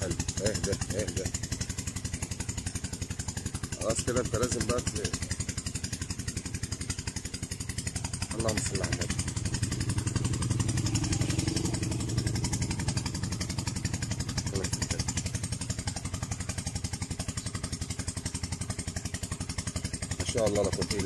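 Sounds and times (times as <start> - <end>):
small engine running: 0.0 - 21.0.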